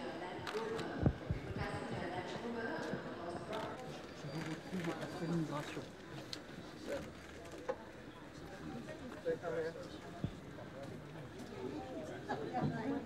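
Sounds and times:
murmur of people talking: 0.0 - 13.0.

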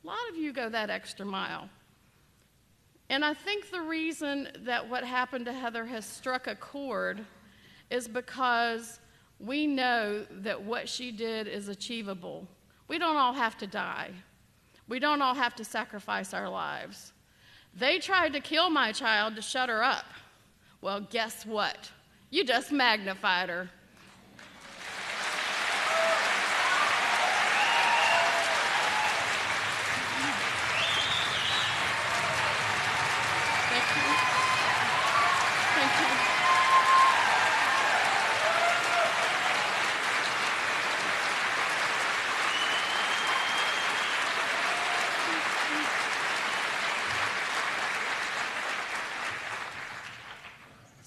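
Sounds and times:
audience applauding: 24.0 - 50.7
cheers and whoops: 25.6 - 40.0, 42.4 - 46.0.

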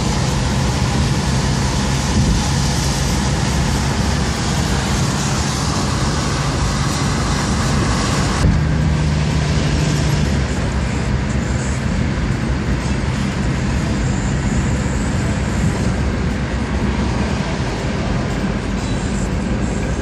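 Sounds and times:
low engine hum: 0.0 - 20.0
tyres and wind rushing: 0.0 - 20.0.

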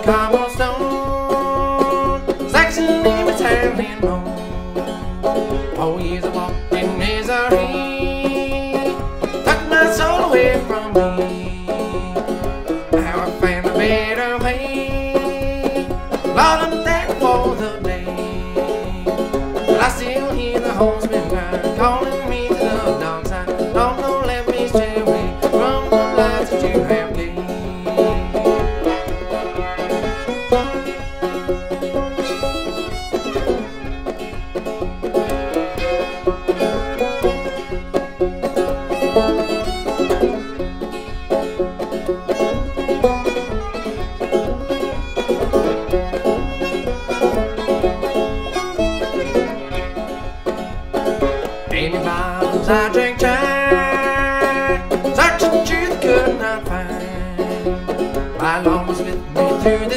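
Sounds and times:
banjo: 0.0 - 59.9
fiddle: 0.0 - 59.9.

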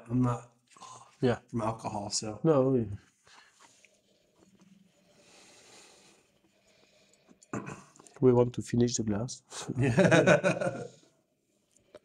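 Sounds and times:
breathy hiss of air drawn in: 5.0 - 7.2.

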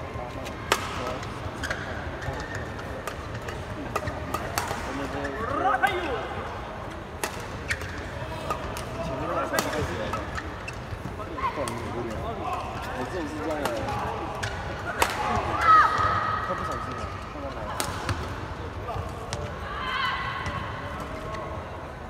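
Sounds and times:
murmur of spectators: 0.0 - 22.0
rackets striking shuttlecock: 1.7 - 5.0, 7.1 - 10.2, 13.4 - 16.8.

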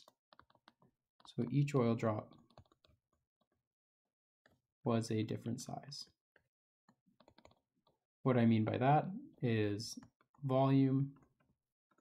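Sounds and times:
stylus tapping on touchscreen: 6.4 - 8.0.

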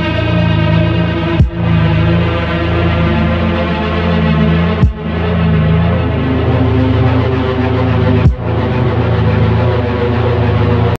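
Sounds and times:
dark droning music: 0.0 - 11.0.

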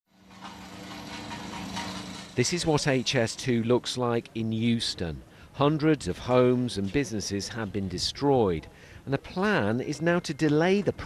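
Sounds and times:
engine humming: 0.1 - 4.4.

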